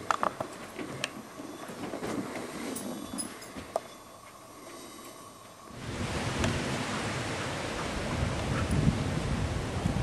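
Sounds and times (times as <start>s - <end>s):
wind buffeting microphone: 5.8s - 10.0s.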